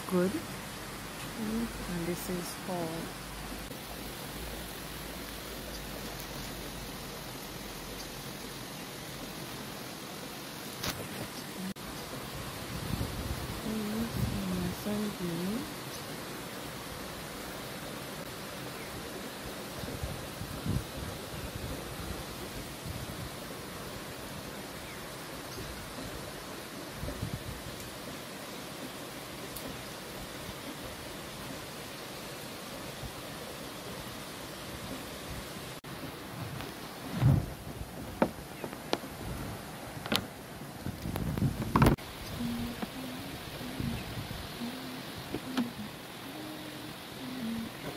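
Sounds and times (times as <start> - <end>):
steady rain hiss: 0.0 - 47.9.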